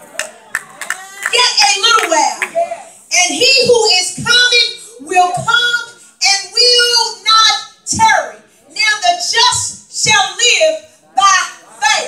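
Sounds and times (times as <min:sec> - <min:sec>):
handclap: 0:00.0 - 0:01.4.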